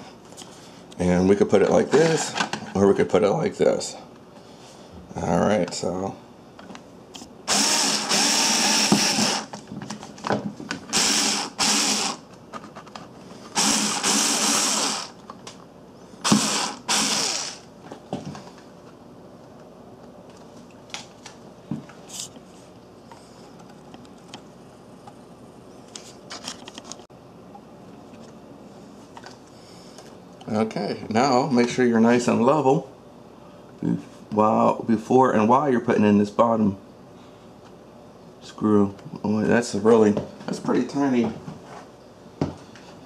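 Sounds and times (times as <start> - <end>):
power drill running: 7.5 - 9.5, 10.9 - 12.2, 13.5 - 15.2, 16.2 - 17.7.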